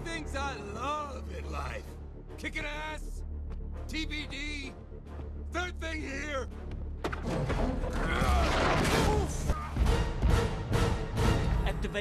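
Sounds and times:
film score music: 0:00.0 - 0:12.0.

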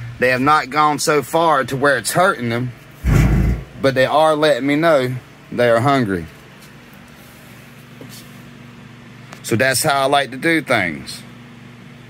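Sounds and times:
fan humming and hissing: 0:00.0 - 0:12.0.

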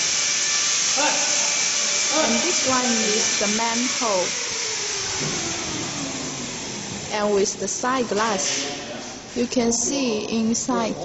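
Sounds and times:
mixer motor hum and hiss: 0:00.0 - 0:09.3.

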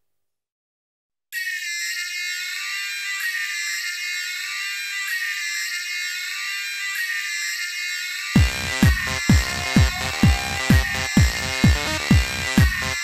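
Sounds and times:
bright synthesizer chords: 0:08.4 - 0:13.0.

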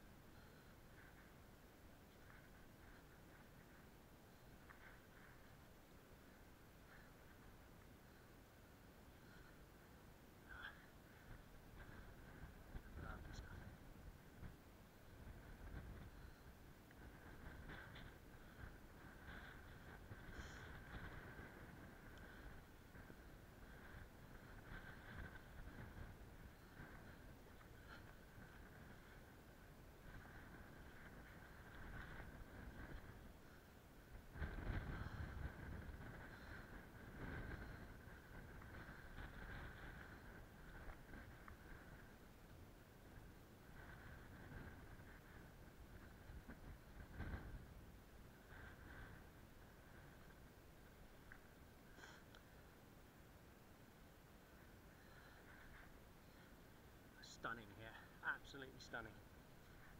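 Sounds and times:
wind rumble on microphone: 0:00.0 - 0:59.9.

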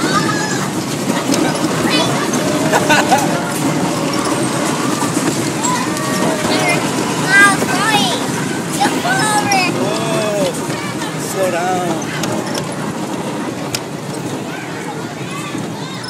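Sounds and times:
children shouting and squealing: 0:00.0 - 0:12.4, 0:14.3 - 0:16.0
amusement ride rumbling: 0:00.0 - 0:16.0.

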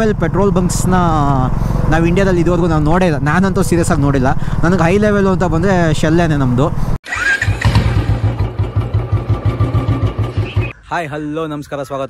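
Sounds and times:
motorcycle engine running: 0:00.0 - 0:06.1, 0:07.2 - 0:10.7.

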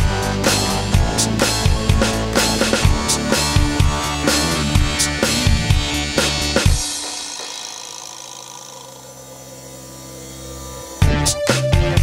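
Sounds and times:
low bass notes: 0:00.0 - 0:06.8, 0:10.9 - 0:12.0
electronic held chord: 0:00.0 - 0:12.0.

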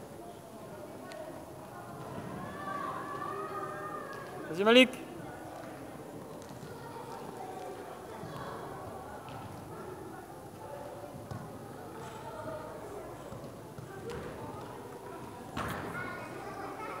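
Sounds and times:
indistinct chatter of voices: 0:00.0 - 0:17.0.

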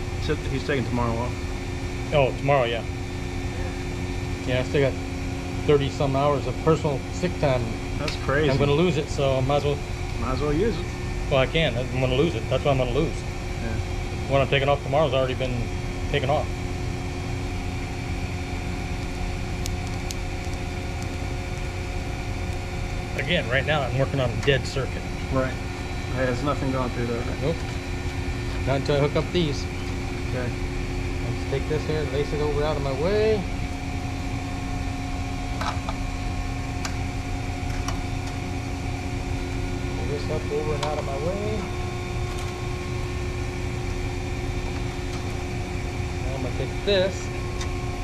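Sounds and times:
machinery drone: 0:00.0 - 0:48.0.

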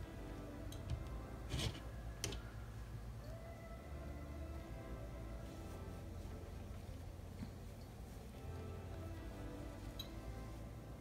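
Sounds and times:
quiet background music: 0:00.0 - 0:11.0
fabric rustling: 0:05.2 - 0:11.0.

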